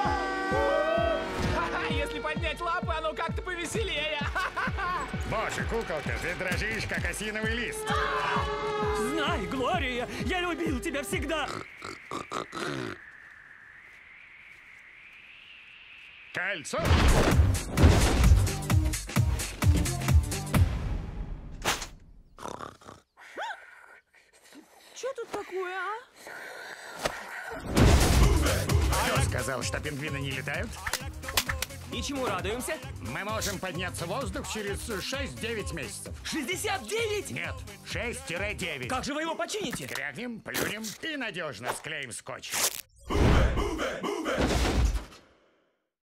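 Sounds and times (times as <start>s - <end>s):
wordless cartoon vocal sound: 11.2s - 13.4s, 22.4s - 24.6s, 26.2s - 29.2s, 43.0s - 44.9s.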